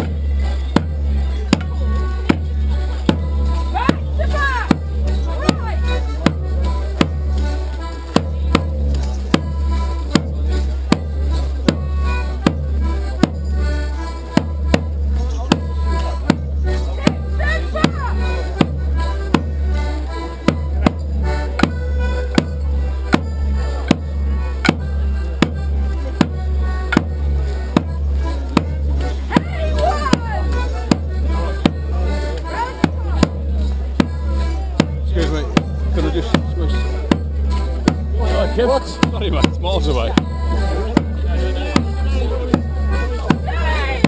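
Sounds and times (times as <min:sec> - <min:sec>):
accordion dance tune: 0:00.0 - 0:44.0
sharp percussive strikes: 0:00.0 - 0:44.0.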